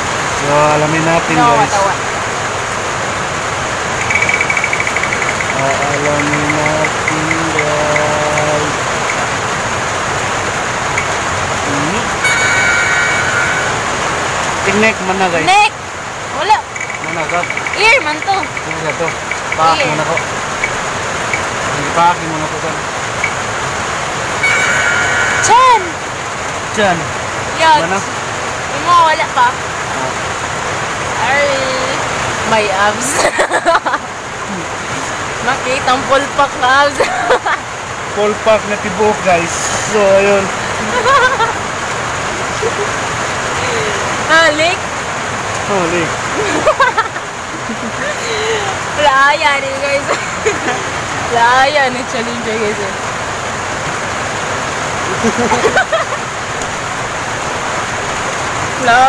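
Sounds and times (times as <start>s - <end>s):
steady background hiss: 0.0s - 59.0s
voices exclaiming and talking: 0.4s - 2.2s, 4.1s - 9.4s, 11.0s - 23.4s, 24.2s - 30.4s, 31.1s - 45.0s, 45.6s - 53.1s, 55.0s - 56.4s, 58.7s - 59.0s
spinning wheel ticking: 3.9s - 9.4s, 10.9s - 11.3s, 16.4s - 21.6s, 23.2s - 23.5s, 24.4s - 26.0s
woman laughing: 33.0s - 34.0s, 37.0s - 37.6s, 40.8s - 41.6s, 42.6s - 42.9s, 43.6s - 44.2s, 46.3s - 48.8s, 50.0s - 51.0s, 55.1s - 56.2s.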